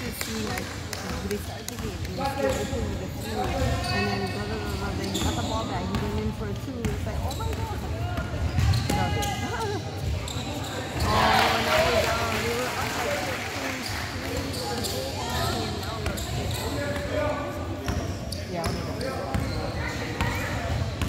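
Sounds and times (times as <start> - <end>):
players and spectators talking: 0.0 - 21.0.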